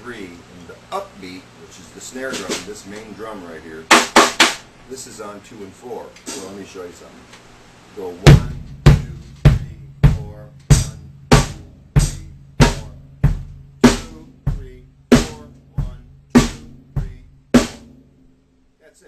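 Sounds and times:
drum kit rock backbeat: 0.9 - 4.8, 6.1 - 6.9, 8.0 - 18.5.

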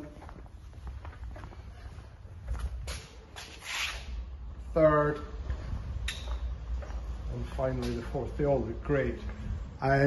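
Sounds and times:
footsteps on tiled floor: 0.0 - 4.7, 5.4 - 8.2.

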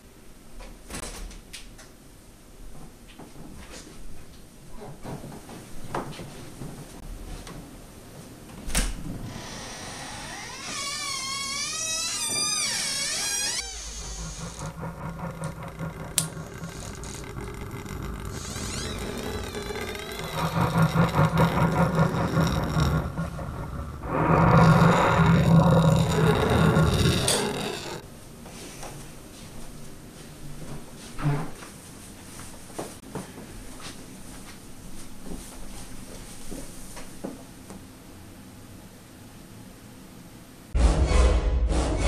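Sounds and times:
warbling eerie tone: 12.1 - 28.0
low droning rumble: 12.5 - 28.0.

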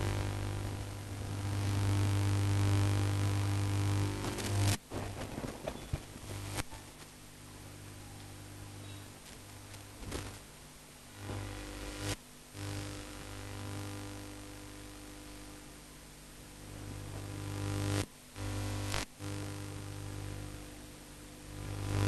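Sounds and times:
electrical hum: 0.0 - 22.0.

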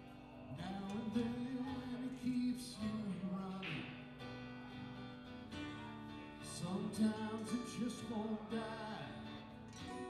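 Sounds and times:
acoustic guitars playing chords: 0.0 - 10.0.

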